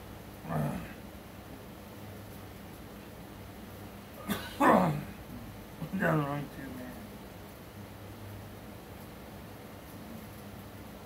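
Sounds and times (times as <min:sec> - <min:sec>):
man coughing: 0:04.2 - 0:05.2.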